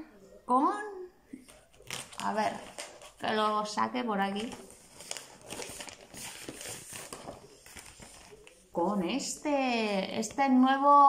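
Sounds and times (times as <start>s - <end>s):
packaging rustling and clicking: 1.4s - 3.2s, 4.4s - 8.7s.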